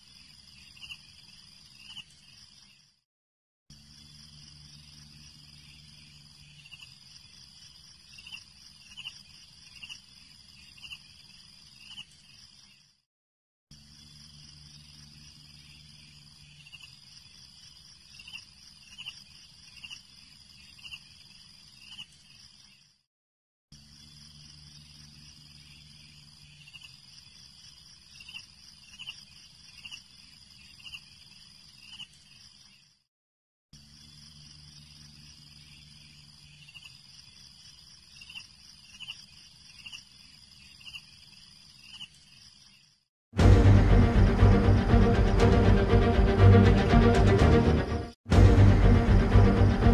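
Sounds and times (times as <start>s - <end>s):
insect chirps: 0.0s - 3.0s, 3.7s - 13.0s, 13.7s - 23.1s, 23.7s - 33.1s, 33.7s - 43.1s
insect drone: 0.0s - 3.0s, 3.7s - 13.0s, 13.7s - 23.1s, 23.7s - 33.1s, 33.8s - 47.6s, 48.3s - 49.9s.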